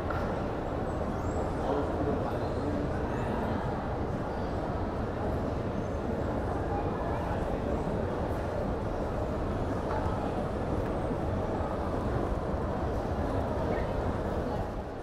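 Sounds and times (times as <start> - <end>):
murmur of distant voices: 0.0 - 15.0.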